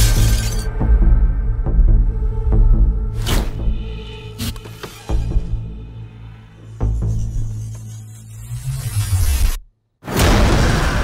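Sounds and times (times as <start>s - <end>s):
glass pane shattering: 0.0s - 0.7s
low sustained trailer music: 0.0s - 9.7s.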